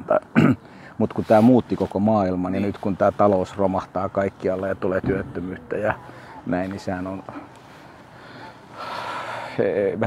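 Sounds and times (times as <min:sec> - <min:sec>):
man speaking: 0:00.0 - 0:07.7, 0:09.5 - 0:10.0
man breathing in: 0:07.8 - 0:09.6.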